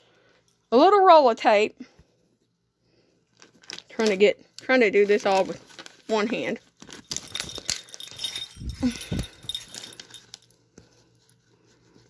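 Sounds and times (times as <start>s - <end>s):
packaging rustling and clicking: 3.3s - 10.6s.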